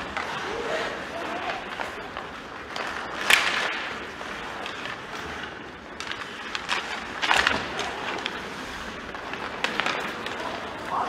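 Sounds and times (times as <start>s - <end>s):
hockey sticks clacking: 0.0s - 11.0s
skates scraping on ice: 0.0s - 11.0s.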